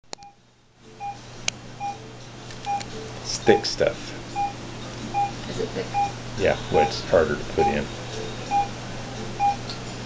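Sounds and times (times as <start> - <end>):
patient monitor pulse beep: 1.0 - 1.2, 1.8 - 2.0, 2.7 - 2.9, 4.4 - 4.6, 5.2 - 7.9, 8.5 - 8.8, 9.4 - 9.6.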